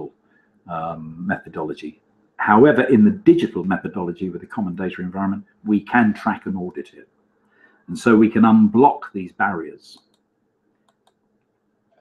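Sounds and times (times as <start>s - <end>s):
faint clicks: 9.9s - 12.0s.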